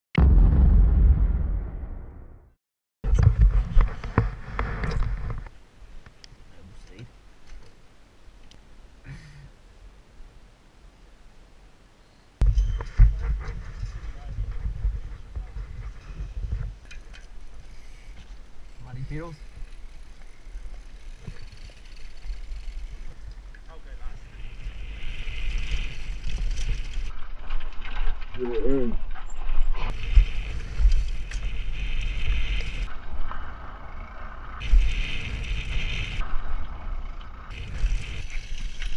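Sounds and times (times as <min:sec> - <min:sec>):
logo intro boom: 0:00.2 - 0:02.5
low wind rumble with sharp knocks: 0:03.1 - 0:06.2, 0:12.4 - 0:19.8, 0:22.4 - 0:28.3, 0:29.9 - 0:38.9
bike tyres on dirt trail: 0:03.1 - 0:09.4, 0:12.4 - 0:38.9
wind buffeting microphone: 0:12.4 - 0:17.0
bike rattling: 0:12.4 - 0:38.9
faint ticks and rustles: 0:13.5 - 0:24.3.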